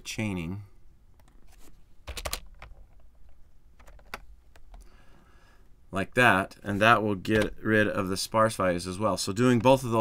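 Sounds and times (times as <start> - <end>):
typing on a computer keyboard: 2.1 - 2.8, 3.8 - 4.8.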